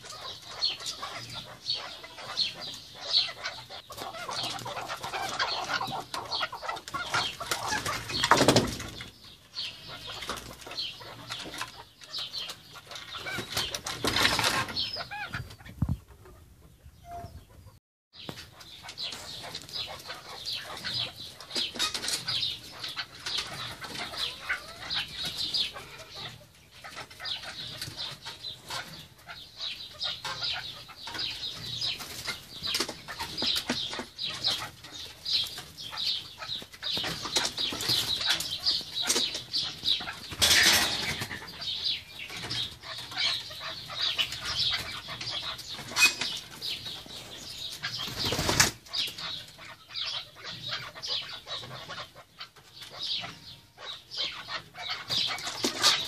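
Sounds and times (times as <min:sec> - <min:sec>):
partridges clucking: 0:36.6 - 0:46.5.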